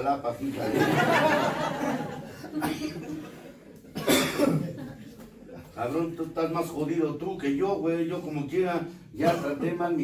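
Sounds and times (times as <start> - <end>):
man coughing: 2.5 - 3.2, 3.9 - 4.8, 9.2 - 9.8.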